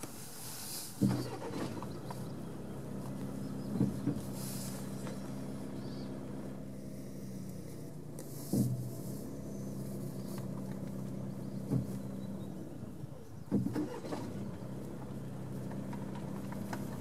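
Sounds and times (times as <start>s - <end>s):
vehicle engine idling: 0.0s - 17.0s.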